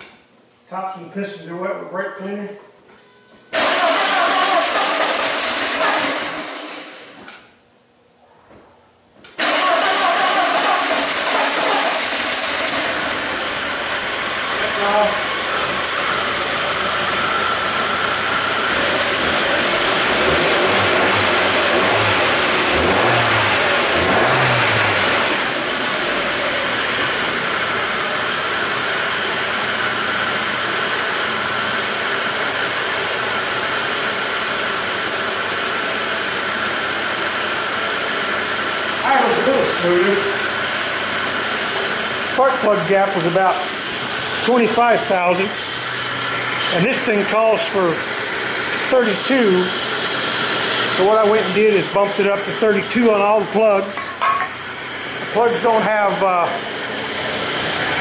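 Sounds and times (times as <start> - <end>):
car engine starting and idling: 3.5 - 7.4, 9.3 - 58.0.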